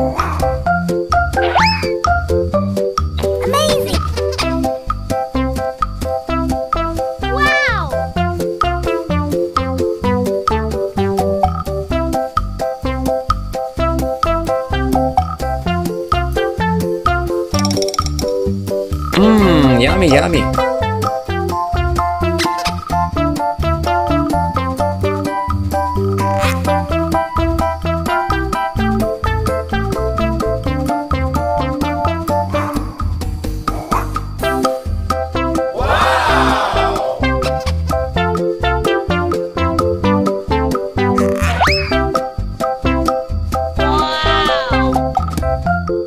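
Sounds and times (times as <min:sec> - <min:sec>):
bouncy plucked background music: 0:00.0 - 0:35.7, 0:37.2 - 0:46.0
bouncy keyboard music: 0:00.4 - 0:18.5
comic rising swoop effect: 0:35.7 - 0:37.6
comic croak sound effect: 0:41.1 - 0:42.1.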